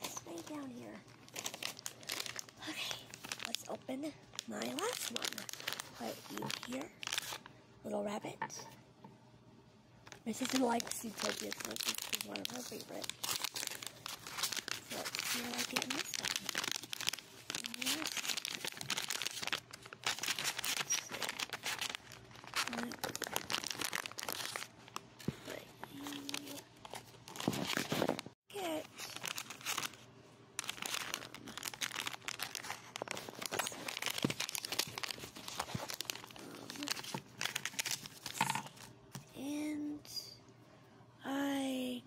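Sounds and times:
foil packet crinkling and tearing: 0:00.0 - 0:07.5, 0:10.1 - 0:38.9.

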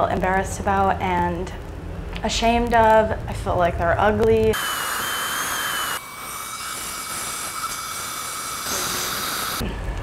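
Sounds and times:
dental drill whine: 0:04.5 - 0:09.7.

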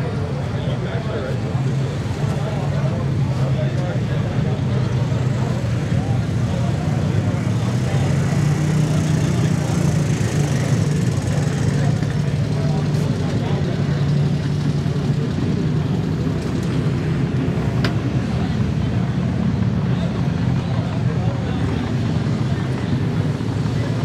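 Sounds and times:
vehicle engine idling: 0:00.0 - 0:24.0.

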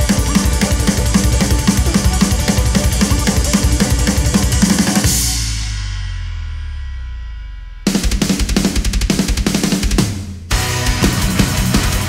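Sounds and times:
fast metal drumming: 0:00.0 - 0:06.8, 0:07.8 - 0:12.0
cymbal ringing: 0:00.0 - 0:07.9.

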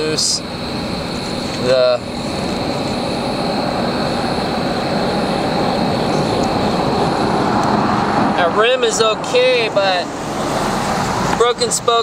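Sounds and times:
faint high steady tone: 0:00.0 - 0:07.3
distant engine roar: 0:00.0 - 0:12.0.

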